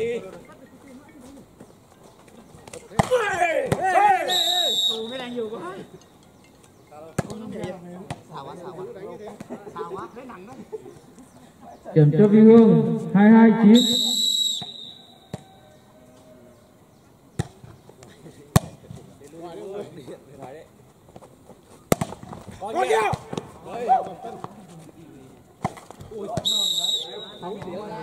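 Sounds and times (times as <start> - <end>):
referee's whistle: 4.2 - 5.6, 13.7 - 15.6, 26.4 - 27.6.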